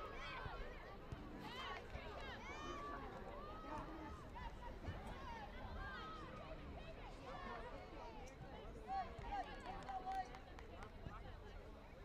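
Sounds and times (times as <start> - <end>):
murmur of chatter: 0.0 - 12.0.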